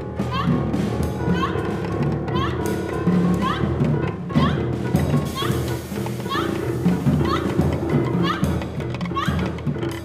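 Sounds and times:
drum and stick hits: 0.0s - 10.0s.

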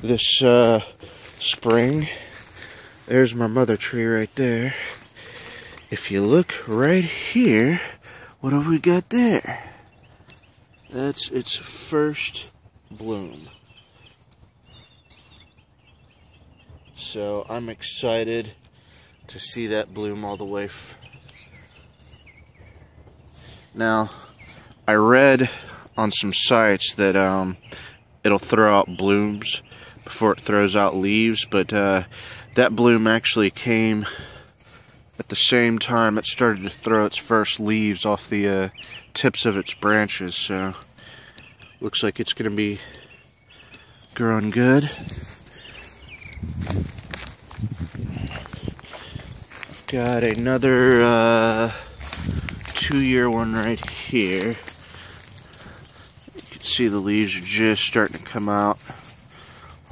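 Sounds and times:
footsteps crunching through dry leaves: 0.0s - 7.3s, 43.1s - 59.9s.

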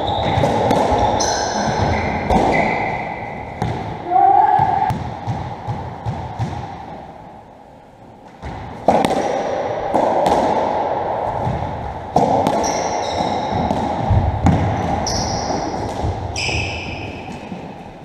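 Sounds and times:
ball cracking off rackets and walls: 8.3s - 10.8s.

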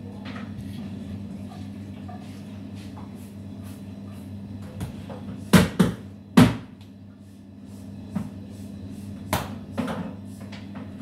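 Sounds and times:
low electrical hum: 0.0s - 11.0s
dough slapped on steel table: 9.3s - 9.6s.

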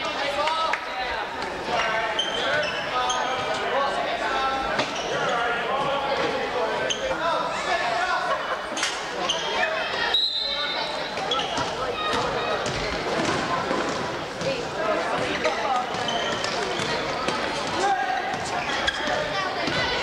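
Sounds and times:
chatter of spectators: 0.0s - 20.0s.

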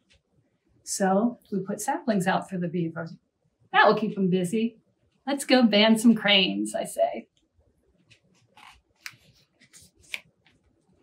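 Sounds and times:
book pages turning: 8.0s - 11.0s
faint paper scrapes: 8.4s - 10.2s.

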